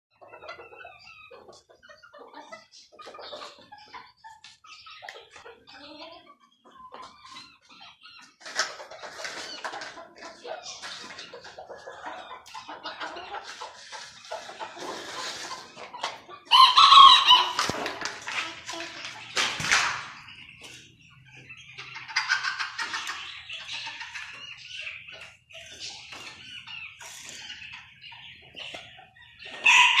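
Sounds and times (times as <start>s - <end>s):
chickens clucking: 0.1s - 30.0s
roosters crowing: 16.5s - 17.8s, 29.6s - 30.0s.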